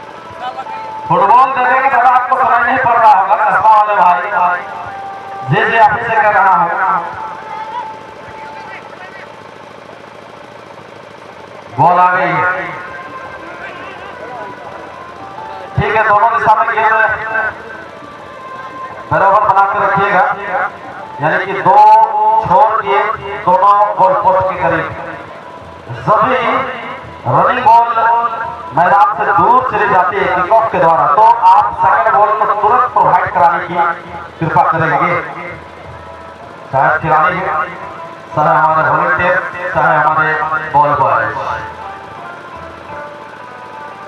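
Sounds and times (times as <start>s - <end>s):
faint stadium background noise: 0.0s - 44.0s
man commentating: 11.8s - 12.8s, 19.1s - 25.0s.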